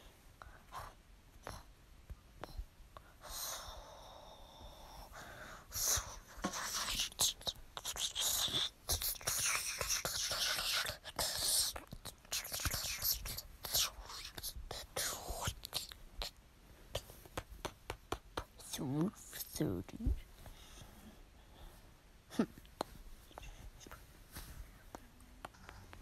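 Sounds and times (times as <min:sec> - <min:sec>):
person whispering: 0:02.4 - 0:21.1, 0:22.3 - 0:24.0.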